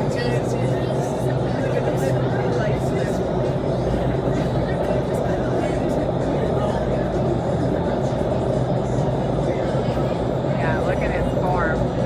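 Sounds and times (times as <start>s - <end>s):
wind tunnel airflow roaring: 0.0s - 12.0s.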